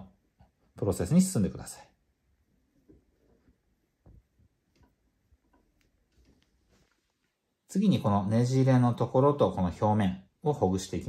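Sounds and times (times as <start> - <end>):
fingers rustling hair: 2.7 - 7.5.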